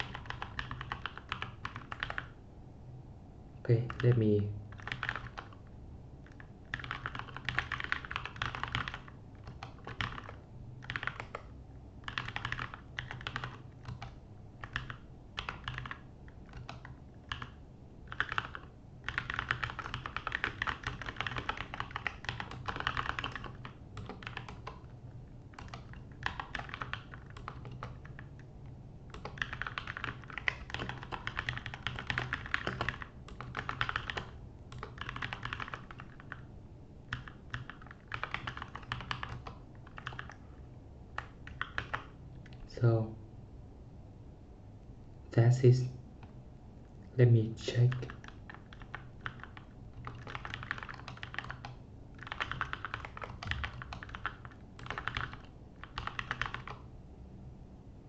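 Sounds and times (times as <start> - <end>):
typing on computer keyboard: 0.0 - 2.4, 3.8 - 28.5, 29.1 - 36.5, 37.1 - 40.5, 41.1 - 42.7, 47.8 - 56.9.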